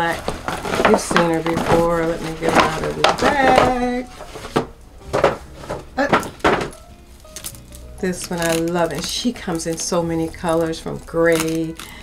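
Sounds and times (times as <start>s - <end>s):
paper bag rustling: 0.0s - 12.0s.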